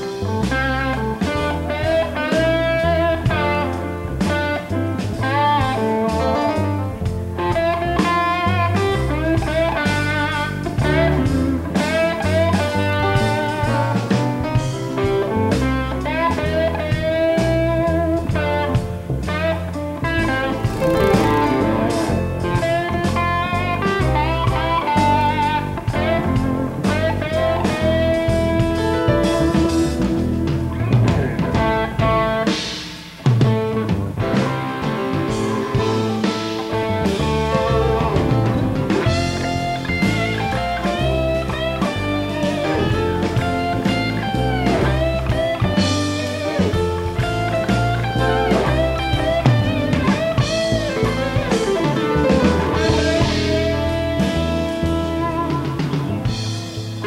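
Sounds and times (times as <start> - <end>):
electric guitar solo: 0.0 - 57.0
jazz-rock band playing: 0.0 - 57.0.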